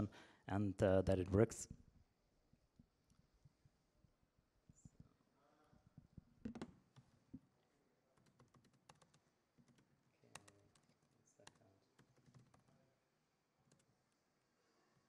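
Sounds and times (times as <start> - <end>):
laptop keyboard typing: 8.2 - 12.7, 13.7 - 13.9.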